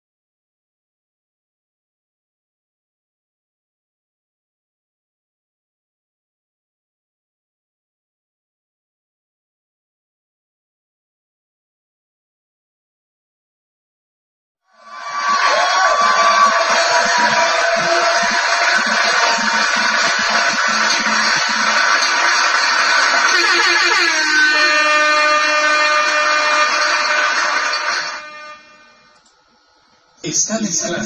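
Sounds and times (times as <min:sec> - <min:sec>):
air horns blaring: 0:15.5 - 0:29.2.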